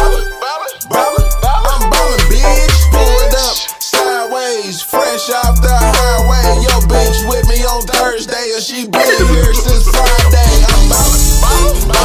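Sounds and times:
rapping over a hip hop beat: 0:00.0 - 0:12.0.

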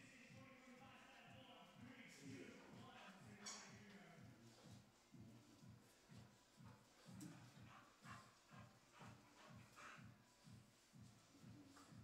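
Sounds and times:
footsteps on hard floor: 0:02.7 - 0:12.0
dog sounds: 0:06.1 - 0:12.0.

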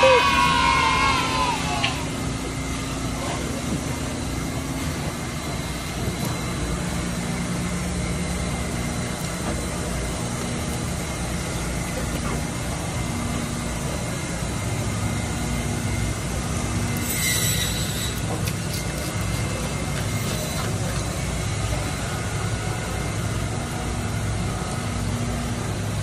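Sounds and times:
low drone: 0:00.0 - 0:26.0
machinery humming: 0:00.0 - 0:26.0.

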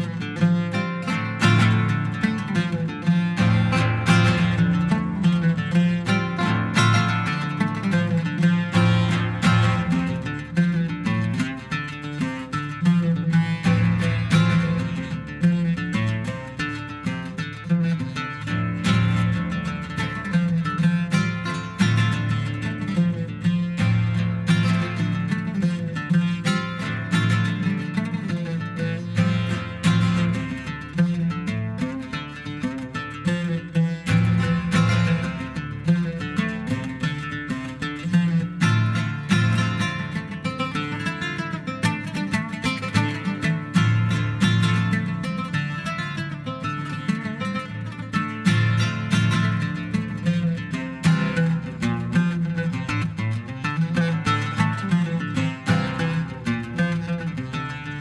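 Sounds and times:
oud plucked notes: 0:00.0 - 0:58.0.

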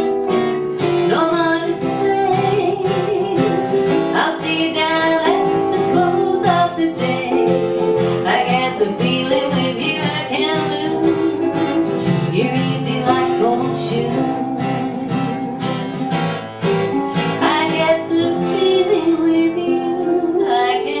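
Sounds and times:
acoustic guitar: 0:00.0 - 0:21.0
electronic keyboard: 0:00.0 - 0:21.0.

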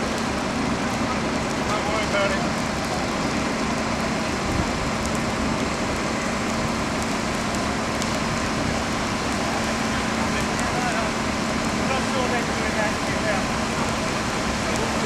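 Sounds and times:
distant voices: 0:00.0 - 0:15.0
fire engine humming: 0:00.0 - 0:15.0
fire hissing and crackling: 0:00.0 - 0:15.0.

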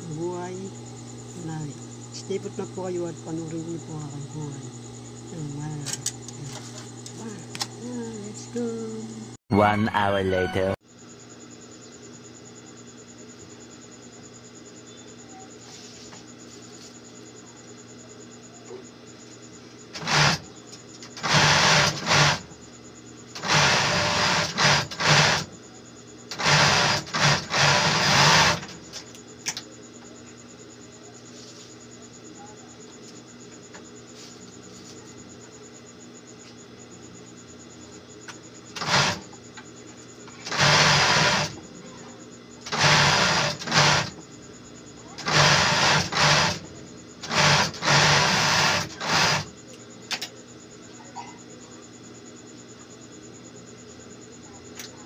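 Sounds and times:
overlock sewing machine running: 0:19.9 - 0:20.4, 0:21.2 - 0:22.5, 0:23.4 - 0:25.5, 0:26.3 - 0:28.8, 0:38.8 - 0:39.2, 0:40.4 - 0:41.6, 0:42.6 - 0:44.2, 0:45.2 - 0:49.5.

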